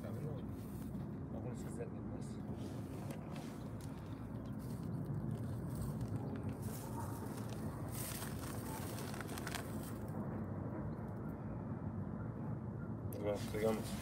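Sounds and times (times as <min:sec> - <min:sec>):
low outdoor rumble: 0:00.0 - 0:14.0.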